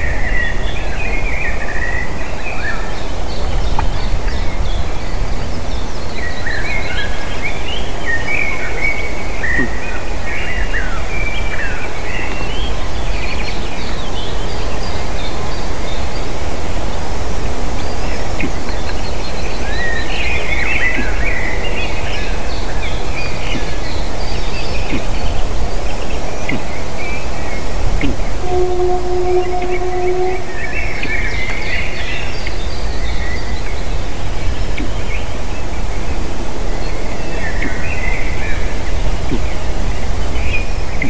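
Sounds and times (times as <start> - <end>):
low rumbling noise: 0.0 - 41.0
small birds chirping and whistling: 17.8 - 35.7.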